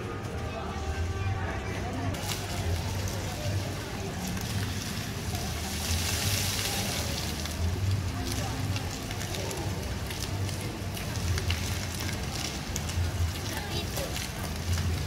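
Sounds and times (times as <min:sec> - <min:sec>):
fountain jets spraying and splashing: 0:00.0 - 0:15.0
people's voices in background: 0:00.0 - 0:15.0.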